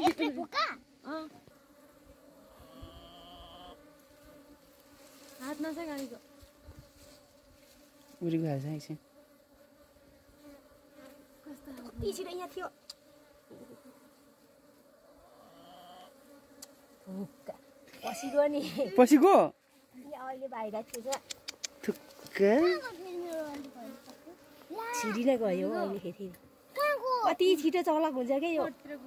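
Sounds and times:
bees buzzing: 0.0 - 29.0.

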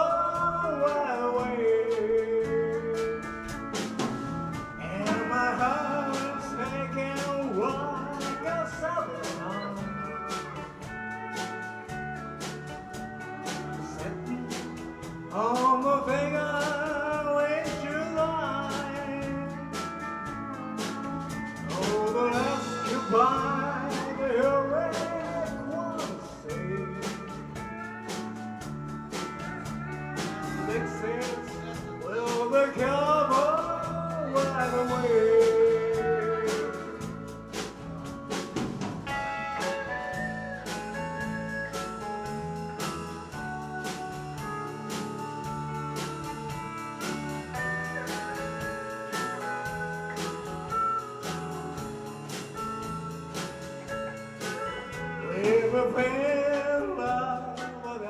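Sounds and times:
live band playing: 0.0 - 58.0
steel guitar sliding phrases: 0.0 - 58.0.

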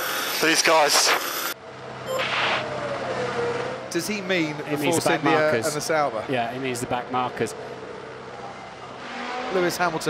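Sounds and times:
race car engine passing by: 7.0 - 10.0.

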